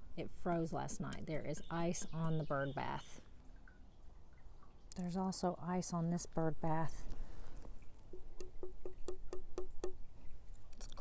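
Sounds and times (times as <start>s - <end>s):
fingertip tapping on ice: 8.1s - 10.0s.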